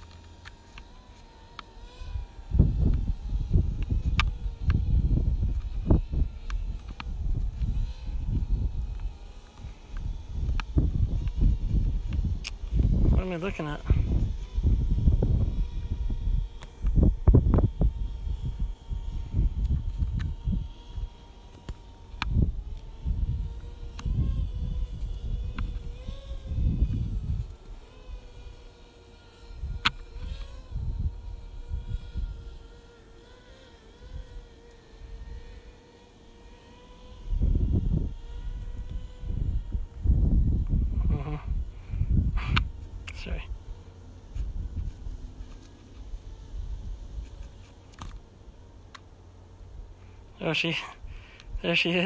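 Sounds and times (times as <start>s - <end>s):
drone propeller hum: 0.0s - 52.0s
wind gusting against microphone: 2.0s - 21.2s, 22.0s - 33.0s, 37.0s - 48.2s.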